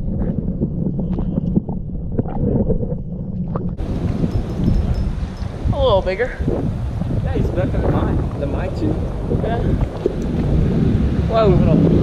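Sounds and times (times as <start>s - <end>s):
muffled underwater rumble: 0.0s - 12.0s
wind noise on microphone: 0.0s - 12.0s.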